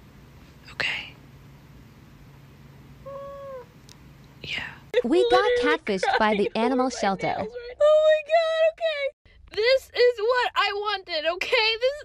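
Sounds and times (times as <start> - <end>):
cat meowing: 3.1 - 3.7.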